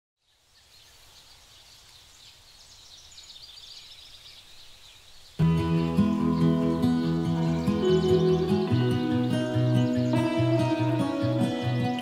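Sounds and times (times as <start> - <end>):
birds chirping: 0.2 - 12.0
soft acoustic guitar music: 5.4 - 12.0.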